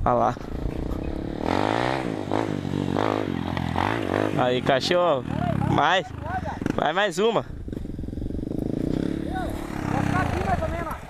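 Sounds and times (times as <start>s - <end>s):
motorcycle engine at low revs: 0.0s - 11.0s
distant voices: 8.6s - 11.0s.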